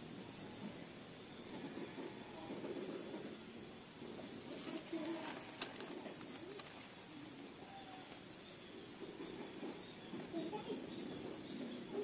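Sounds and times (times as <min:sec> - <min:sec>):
dove cooing: 0:04.4 - 0:12.0.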